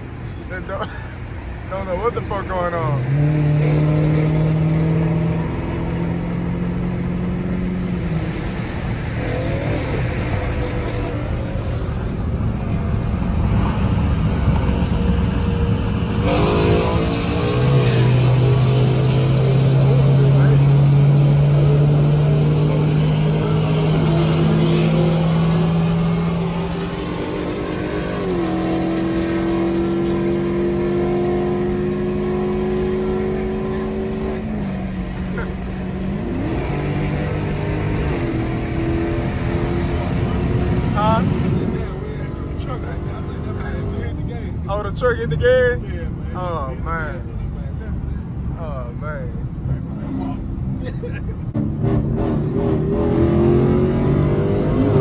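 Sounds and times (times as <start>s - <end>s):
car engine droning: 0.0s - 55.0s.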